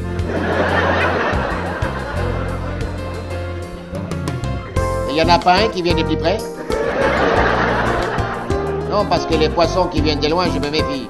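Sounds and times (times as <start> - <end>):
background music: 0.0 - 11.0
audience laughter: 0.2 - 3.4, 6.6 - 8.6.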